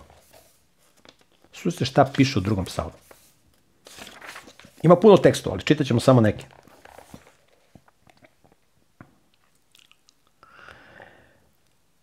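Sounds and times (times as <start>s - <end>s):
mouth clicks and lip noises: 8.0s - 10.5s
soft breath: 10.4s - 11.6s.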